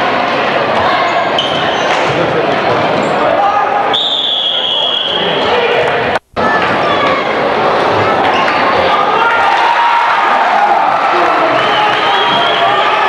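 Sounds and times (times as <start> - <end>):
spectators talking: 0.0 - 13.0
referee's whistle blast: 3.9 - 5.3, 11.5 - 13.0.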